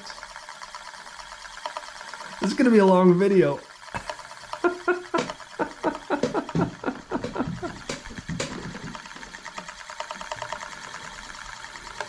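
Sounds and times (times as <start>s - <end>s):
metal disk spinning whirr: 0.0s - 12.0s.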